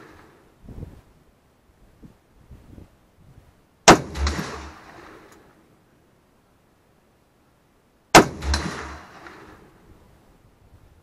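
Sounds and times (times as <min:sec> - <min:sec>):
rifle shot with echo: 0:03.9 - 0:05.3, 0:08.1 - 0:09.7.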